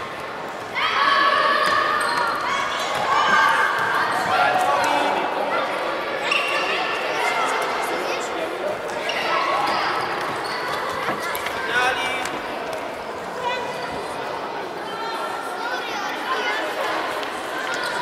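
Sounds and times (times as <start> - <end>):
children shouting: 0.7 - 4.4.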